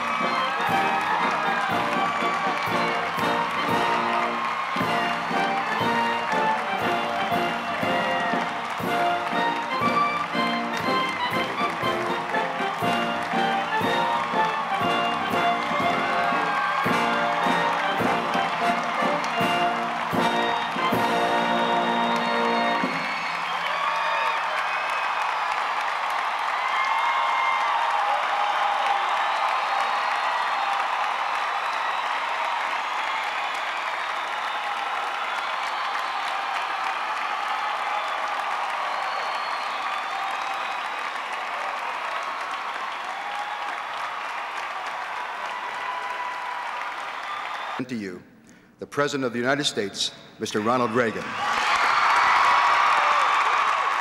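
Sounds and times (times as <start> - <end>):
music playing: 0.0 - 23.6
crowd applause: 0.0 - 47.9, 50.6 - 54.0
crowd cheering: 0.0 - 48.0, 50.5 - 54.0.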